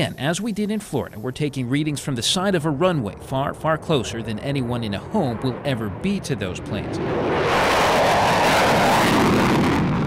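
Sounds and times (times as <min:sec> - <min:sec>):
fighter jet taking off: 0:00.0 - 0:10.0.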